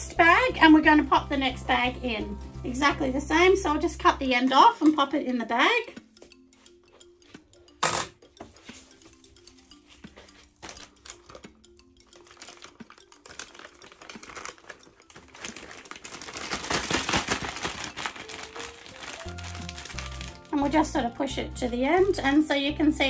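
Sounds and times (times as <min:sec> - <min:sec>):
soft background music: 0:00.0 - 0:23.0
plastic bag crinkling: 0:10.6 - 0:11.5, 0:12.2 - 0:20.9.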